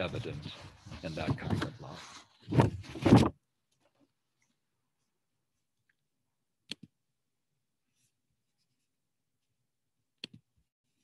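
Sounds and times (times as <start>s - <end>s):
computer mouse click: 6.7s - 6.9s, 10.2s - 10.4s.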